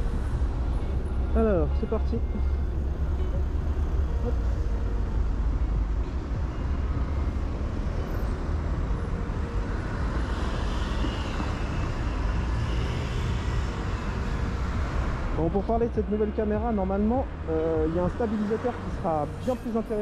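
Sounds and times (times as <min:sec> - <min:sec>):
road and traffic noise: 0:00.0 - 0:20.0.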